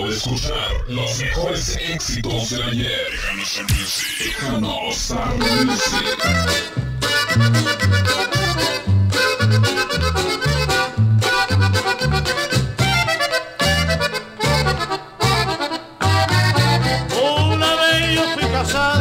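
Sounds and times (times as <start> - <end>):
bouncing bass line: 5.3 - 19.0
accordion melody: 5.4 - 19.0.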